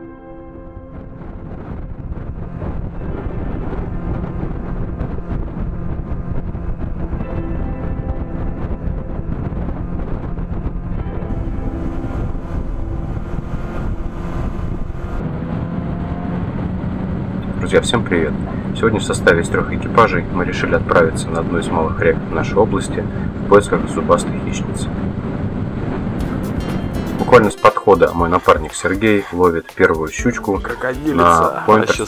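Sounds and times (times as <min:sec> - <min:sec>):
outboard motor running: 0:08.4 - 0:22.0.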